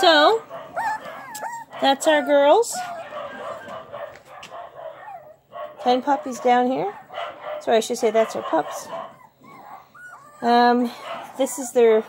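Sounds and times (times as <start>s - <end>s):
puppies whining and yipping: 0.0s - 4.2s, 4.9s - 5.5s, 6.4s - 12.0s.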